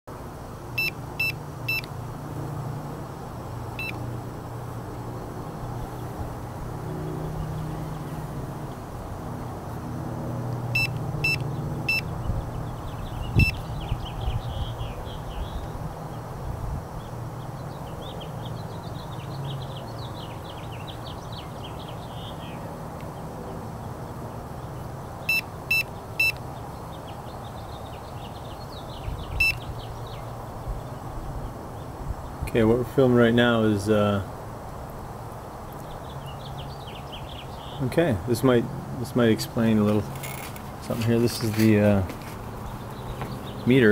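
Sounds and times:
meter beeping in high tones: 0.8s - 1.9s, 10.8s - 12.0s, 29.4s - 29.6s.

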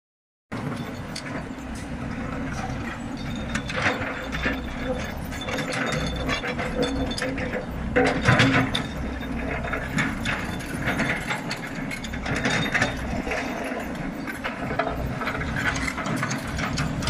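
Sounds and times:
excavator diesel engine: 0.5s - 17.0s.

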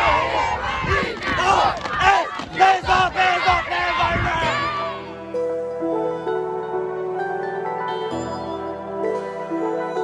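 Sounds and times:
boys shouting together: 0.0s - 5.1s.

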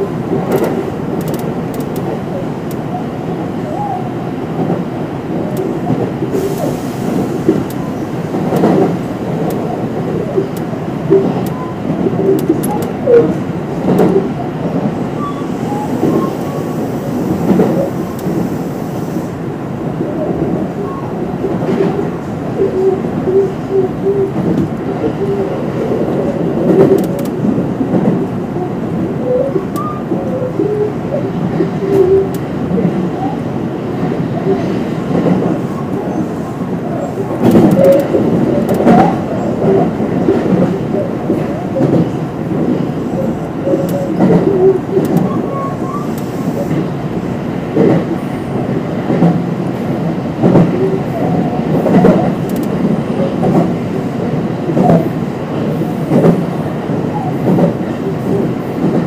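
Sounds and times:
train rumble: 0.0s - 59.0s.

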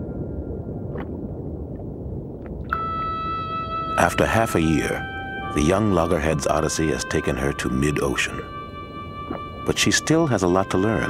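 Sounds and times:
low rumble: 0.0s - 11.0s
held synth chord: 2.7s - 11.0s.

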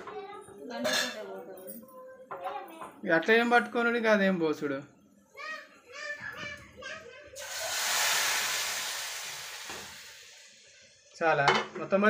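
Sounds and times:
hot oil sizzling in a pot: 7.4s - 11.2s.

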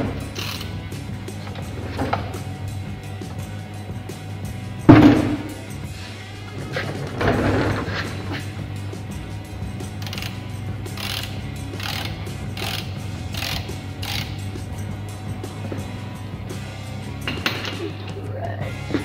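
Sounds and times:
ratchet wrench clicking: 0.2s - 2.5s, 9.7s - 14.8s.

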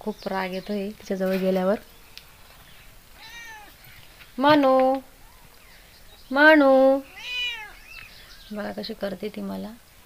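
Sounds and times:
cat meowing angrily: 3.2s - 4.0s, 7.1s - 8.0s.

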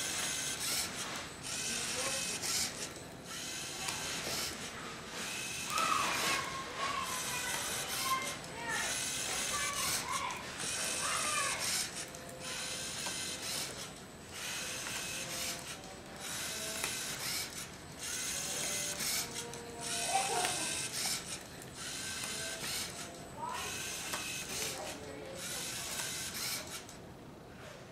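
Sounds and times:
robot motors and gears whirring: 0.0s - 26.9s.

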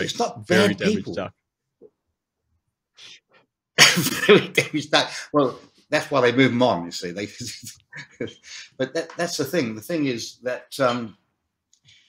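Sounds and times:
man speaking and laughing: 0.0s - 1.3s, 3.8s - 11.1s.

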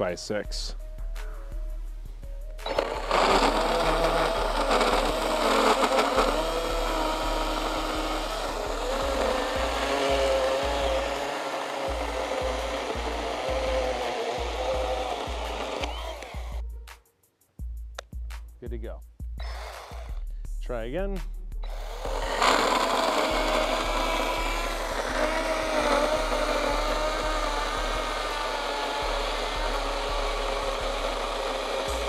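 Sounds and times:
battery saw cutting wood: 2.6s - 16.6s, 19.4s - 20.2s, 21.6s - 32.0s.

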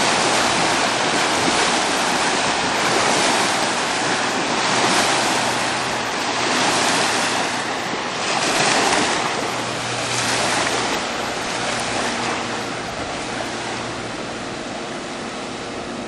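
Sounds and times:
low engine hum: 0.0s - 16.0s
spray hissing off hull: 0.0s - 16.0s
water and wind rushing: 0.0s - 16.0s.

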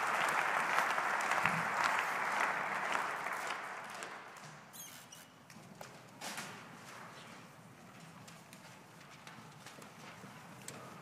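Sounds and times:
people shuffling: 5.6s - 11.0s.

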